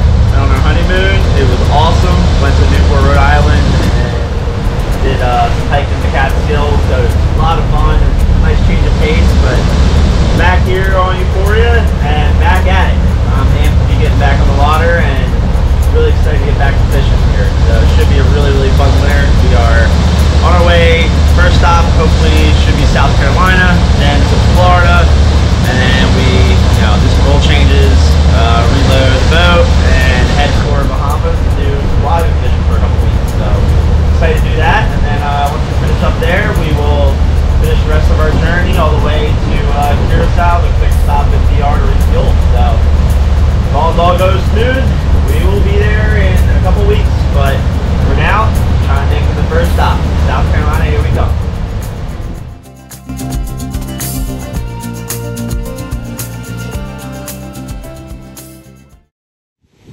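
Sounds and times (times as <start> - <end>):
man talking: 0.0 - 42.9, 43.7 - 51.5
wind on microphone: 0.0 - 52.7
boat engines droning: 0.0 - 58.5.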